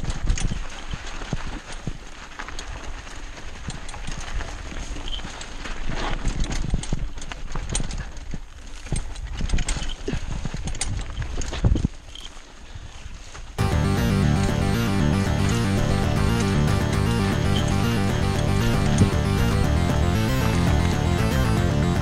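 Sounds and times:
mountain bike rattling on dirt: 0:00.0 - 0:13.6.

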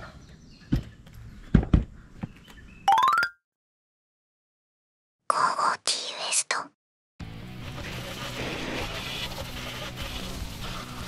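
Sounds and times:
person whispering: 0:05.3 - 0:06.8.

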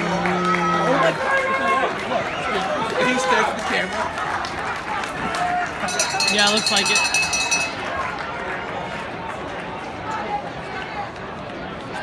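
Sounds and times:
murmur of crowd voices: 0:00.0 - 0:12.0.

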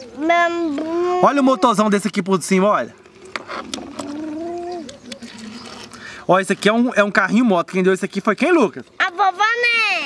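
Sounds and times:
child holding a steady tone: 0:03.8 - 0:05.6.

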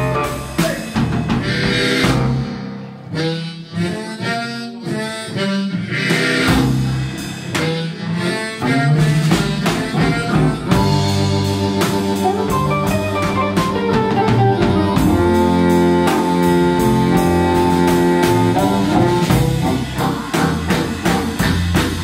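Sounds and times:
blues band playing: 0:00.0 - 0:22.0
harmonica: 0:00.0 - 0:22.0.

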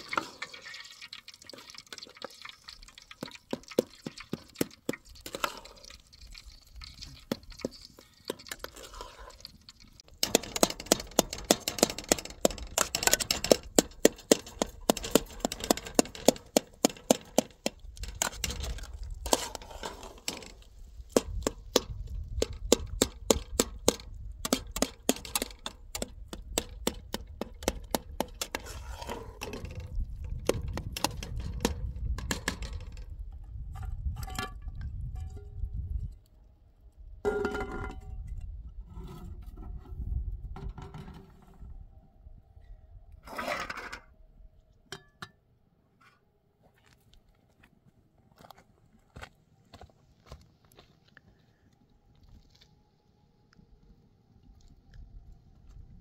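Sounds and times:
metal spoon scraping a pot: 0:03.8 - 0:20.7, 0:27.7 - 0:29.9.

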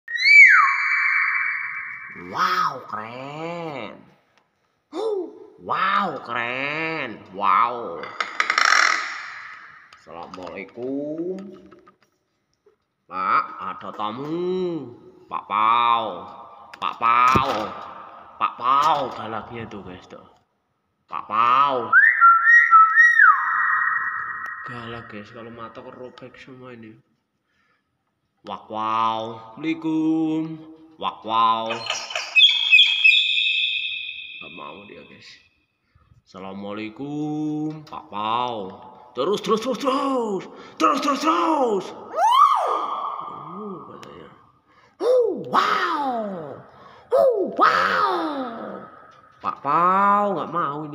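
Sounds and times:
hill myna whistled call: 0:00.0 - 0:02.6, 0:21.9 - 0:25.2, 0:31.8 - 0:35.2.

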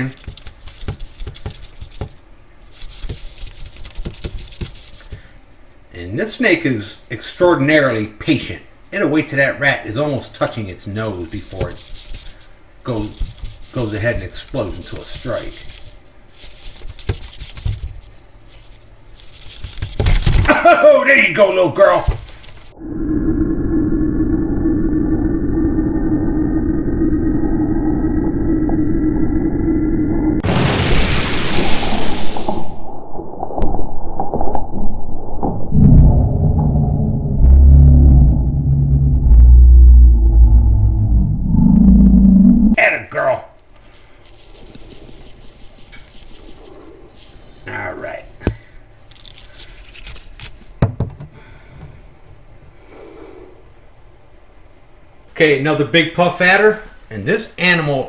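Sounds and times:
drone with rising whine: 0:22.8 - 0:30.4, 0:34.5 - 0:42.8
deep booming bass: 0:35.4 - 0:42.8.

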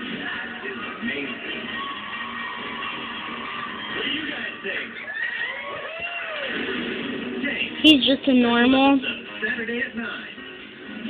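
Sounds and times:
television music: 0:00.0 - 0:11.0.

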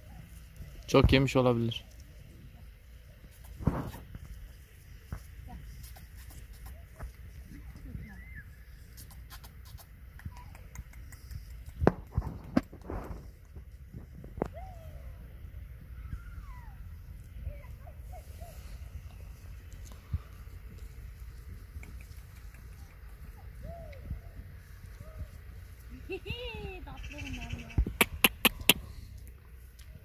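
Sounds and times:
wind rumble on microphone: 0:11.4 - 0:29.1
goats chewing: 0:17.9 - 0:24.0.

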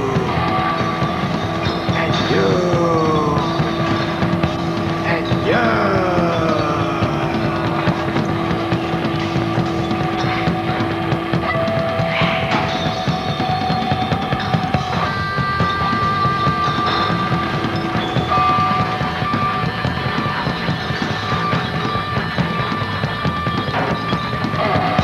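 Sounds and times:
bass and drums: 0:00.0 - 0:25.0
electric guitar sustained notes: 0:00.0 - 0:25.0.

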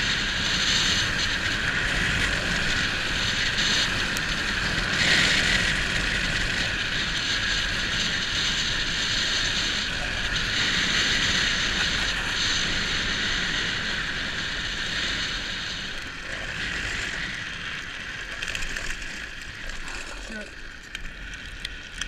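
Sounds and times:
wheels scraping on asphalt: 0:00.0 - 0:22.0.

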